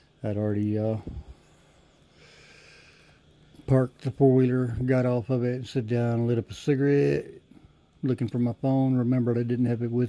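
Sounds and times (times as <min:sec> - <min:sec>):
man breathing in through nose: 0:01.1 - 0:03.3.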